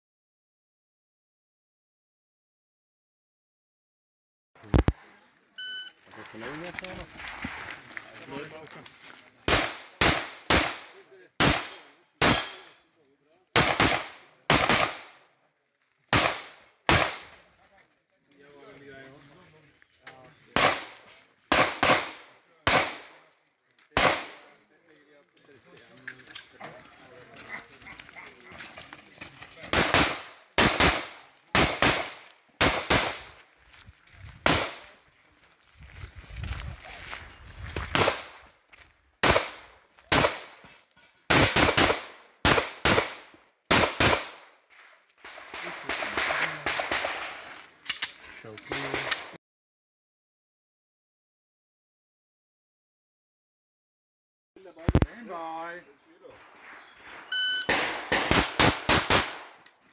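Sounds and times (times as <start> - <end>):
pistol shots: 9.5 - 12.8, 13.6 - 15.2, 16.1 - 17.4, 20.6 - 23.2, 24.0 - 24.5, 29.7 - 33.3, 34.5 - 34.9, 39.2 - 40.6, 41.3 - 44.4, 45.2 - 47.4, 57.6 - 59.6.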